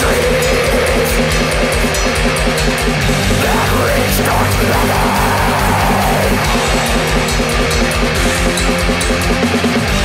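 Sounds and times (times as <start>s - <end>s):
distorted guitars: 0.0s - 10.0s
fast drumming: 0.0s - 10.0s.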